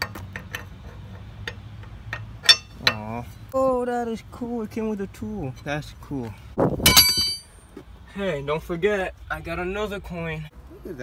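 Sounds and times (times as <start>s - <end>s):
lug wrench clicking on lug nut: 0.0s - 3.0s.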